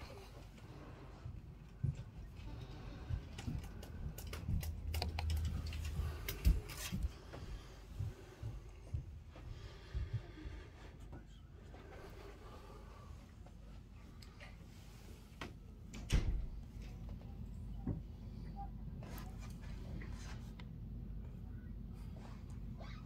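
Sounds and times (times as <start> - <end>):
low thumps and rumble: 3.0 - 10.8
computer keyboard typing: 4.2 - 6.6.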